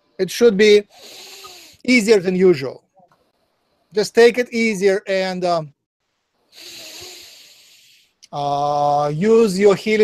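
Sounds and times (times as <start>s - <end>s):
man breathing out: 0.9s - 1.8s, 6.6s - 8.2s.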